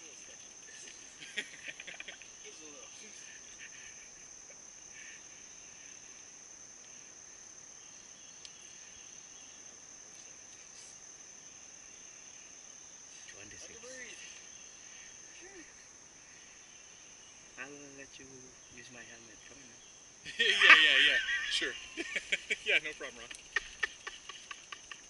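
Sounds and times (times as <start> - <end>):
insects droning: 0.0 - 25.0.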